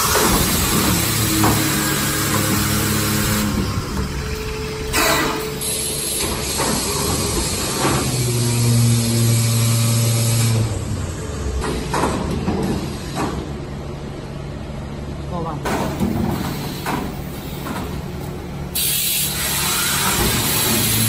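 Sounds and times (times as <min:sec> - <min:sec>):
low pitched drone: 0:00.0 - 0:11.6
packing machine humming: 0:00.0 - 0:21.0
air hiss bursts: 0:04.9 - 0:08.4, 0:18.7 - 0:21.0.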